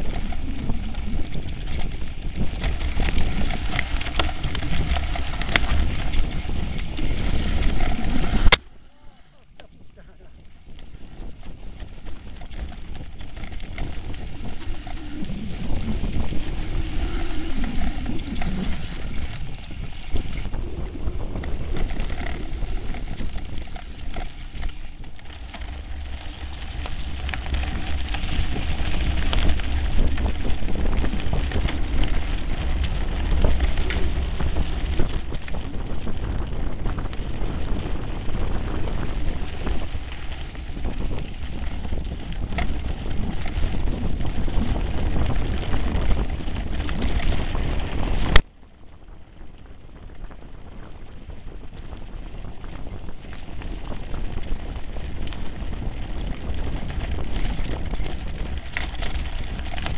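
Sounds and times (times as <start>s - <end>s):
bike tyres crackling on stones: 0.0s - 59.9s
wind buffeting microphone: 0.0s - 59.9s.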